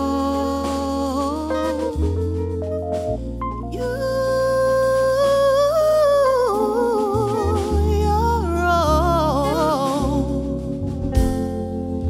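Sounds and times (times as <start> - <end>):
woman singing without words: 0.0 - 2.6, 3.6 - 10.6
upright bass notes: 0.0 - 12.0.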